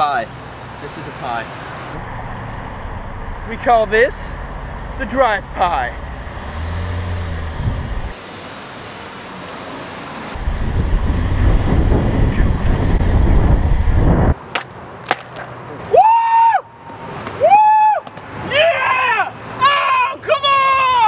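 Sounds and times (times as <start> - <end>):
wind buffeting microphone: 7.2 - 8.2, 10.3 - 14.4
person yelling: 15.9 - 16.8, 17.4 - 21.0.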